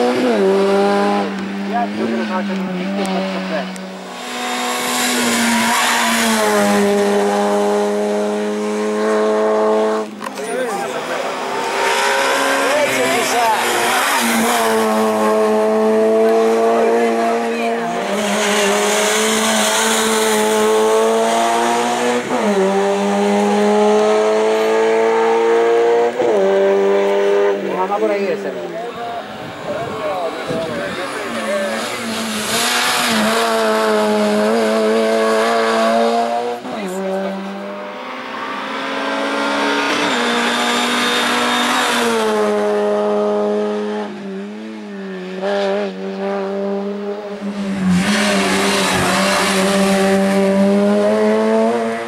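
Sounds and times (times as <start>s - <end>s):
race car engine accelerating: 0.0s - 52.0s.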